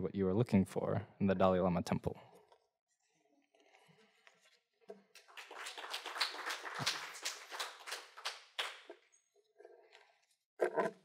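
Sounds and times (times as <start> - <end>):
small audience applauding: 5.2 - 8.9.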